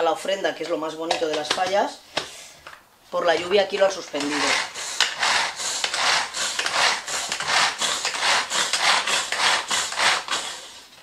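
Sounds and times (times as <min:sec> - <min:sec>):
rhythmic scraping strokes: 0:03.9 - 0:11.0.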